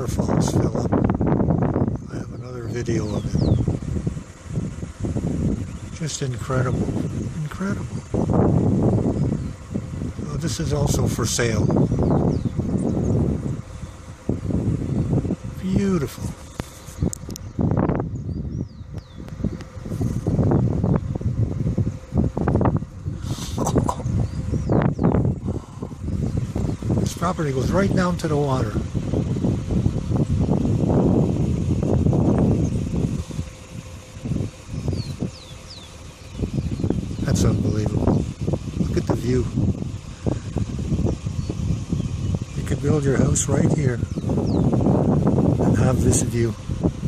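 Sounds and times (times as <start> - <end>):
wind buffeting microphone: 0.0 - 47.0
bird chirping: 2.0 - 4.4, 8.9 - 9.9, 10.7 - 14.2, 14.9 - 21.2, 23.4 - 27.8, 32.3 - 38.5, 41.1 - 45.1.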